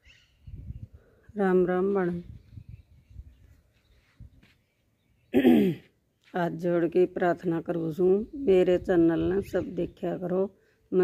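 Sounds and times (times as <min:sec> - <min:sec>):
woman clearing her throat: 0:05.3 - 0:05.9.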